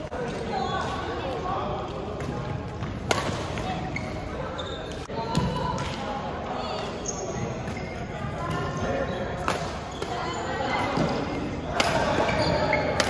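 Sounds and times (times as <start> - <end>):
racket hitting shuttlecock: 2.2 - 3.7, 10.8 - 13.0
sneakers squeaking on court: 2.2 - 5.5, 6.6 - 11.4, 12.0 - 13.0.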